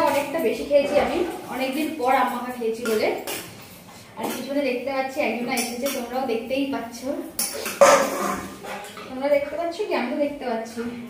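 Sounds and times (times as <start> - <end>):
steel dishes clattering: 7.4 - 9.0
sharp metal clank: 7.6 - 8.7.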